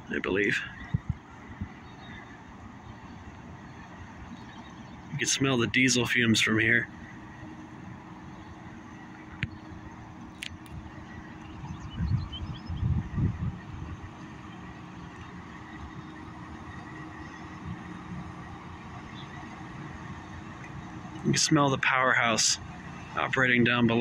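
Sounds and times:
faint steady whine: 0.0s - 24.0s
low rumbles: 0.0s - 24.0s
ship diesel machinery drone: 0.0s - 24.0s.

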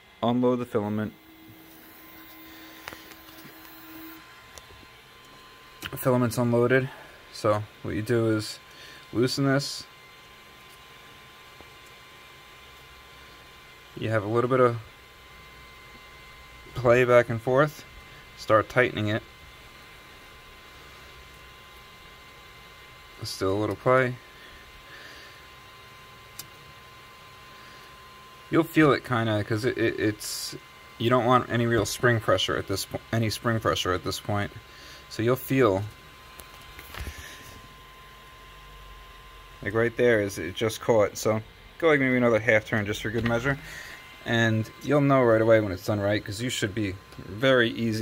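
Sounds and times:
stepper motor whine: 0.0s - 7.5s, 35.6s - 48.0s
thin steady tone: 0.3s - 4.4s.

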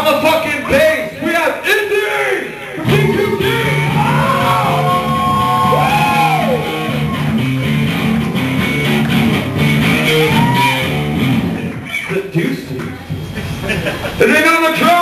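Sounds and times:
bass and drums: 2.8s - 11.9s
electric guitar bent notes: 2.8s - 11.9s.

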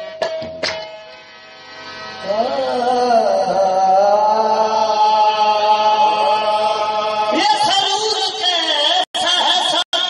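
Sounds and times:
person singing long notes: 2.2s - 7.4s.

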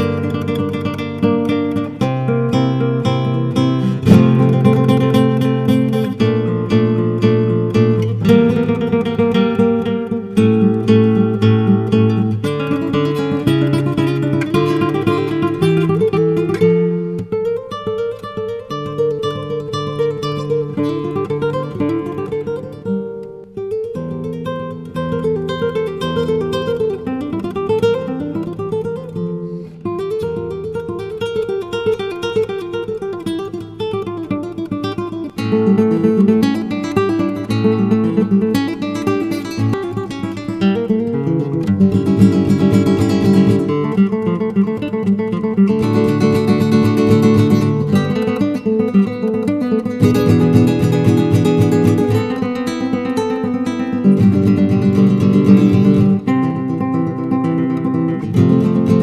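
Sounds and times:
classical guitar arpeggios: 0.0s - 59.0s.

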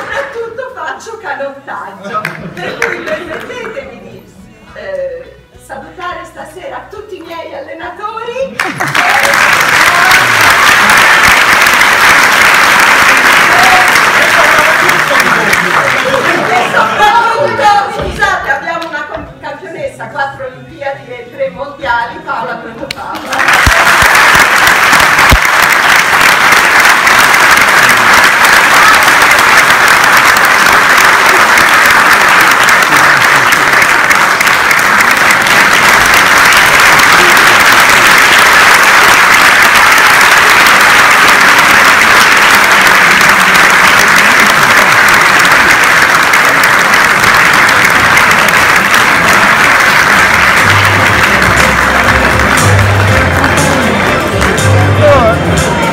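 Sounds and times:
audience applauding: 2.2s - 3.7s, 8.6s - 17.8s, 23.1s - 55.9s
music with low bass notes: 50.6s - 55.9s.

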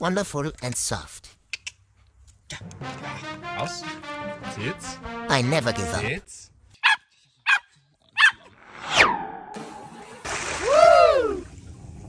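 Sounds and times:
dog barking: 6.8s - 8.4s
water splash: 9.6s - 11.8s
rising-and-falling cry: 10.5s - 11.5s.

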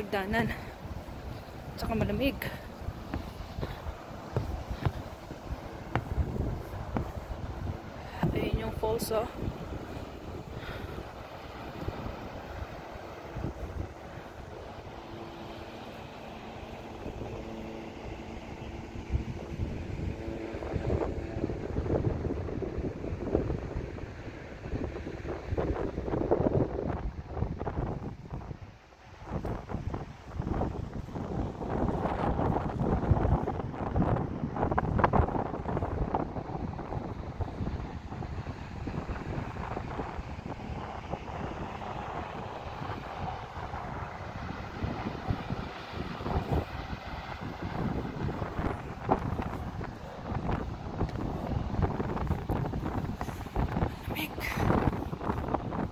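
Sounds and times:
wind buffeting microphone: 0.0s - 55.9s.

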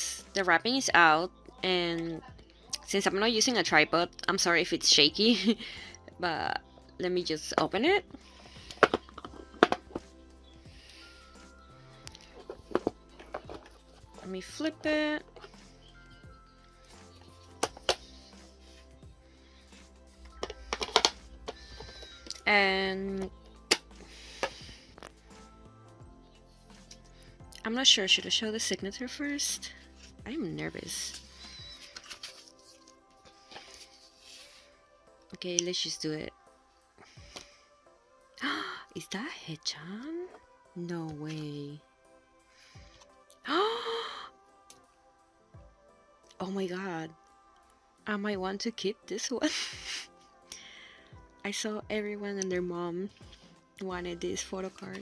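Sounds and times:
soft background music: 0.0s - 55.0s.

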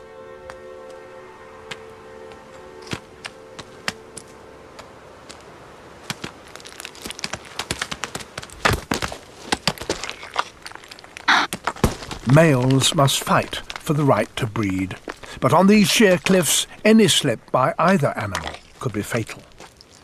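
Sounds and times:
horns clashing: 0.0s - 4.7s
orchestral held notes: 0.0s - 5.0s
hooves on stone: 2.8s - 20.0s.

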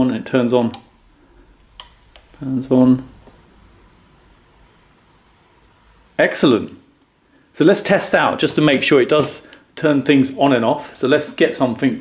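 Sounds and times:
faint steady hiss: 0.0s - 12.0s.

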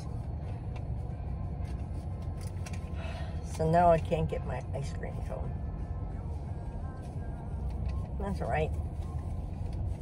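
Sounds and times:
car engine idling: 0.0s - 10.0s
faint music: 0.0s - 10.0s.

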